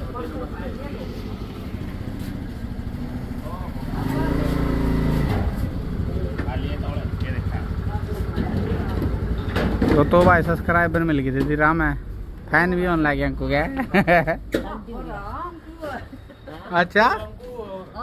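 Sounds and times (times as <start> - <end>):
indistinct voices: 0.0 - 13.4
vehicle engine rumbling: 0.0 - 17.6.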